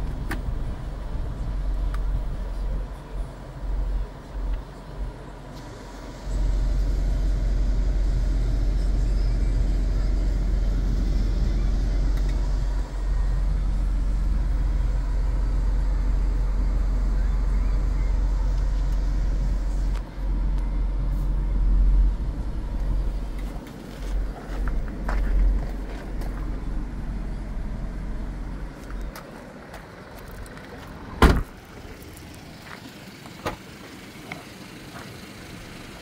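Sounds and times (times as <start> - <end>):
diesel engine idling in cabin: 0.0 - 36.0.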